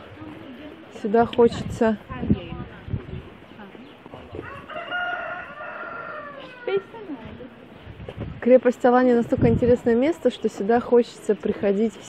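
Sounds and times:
rooster crowing: 0:04.4 - 0:07.0.

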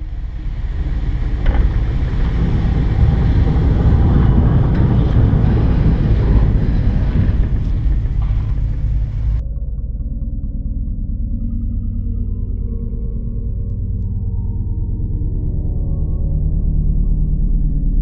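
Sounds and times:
loud low rumble: 0:00.0 - 0:17.6.

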